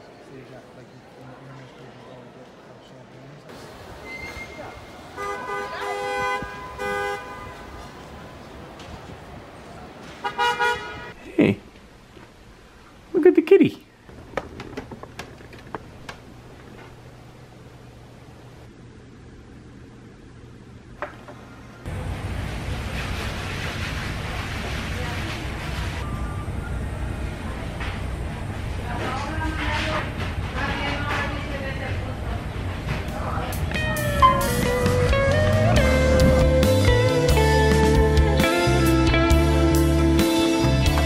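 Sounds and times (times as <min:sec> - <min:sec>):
indistinct background chatter: 0:00.0 - 0:03.6
city street traffic: 0:00.0 - 0:13.7, 0:15.7 - 0:41.0
two-note car horn honking: 0:05.2 - 0:07.8, 0:34.1 - 0:35.6.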